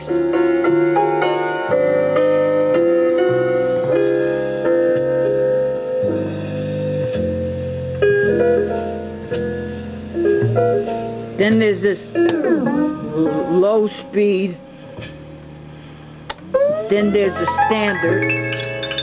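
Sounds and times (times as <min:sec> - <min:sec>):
held chords over bass line: 0:12.1 - 0:13.7, 0:16.4 - 0:19.0
keyboard music from cassette: 0:12.2 - 0:13.6, 0:16.4 - 0:19.0.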